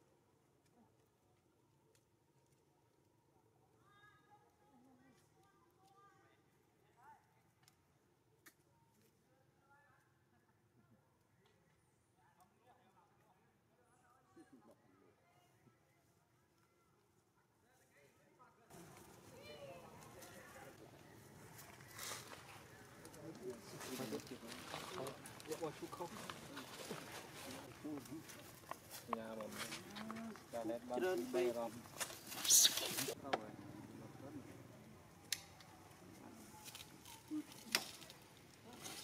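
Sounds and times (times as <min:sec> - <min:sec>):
rustling crackle: 0:18.8 - 0:33.2.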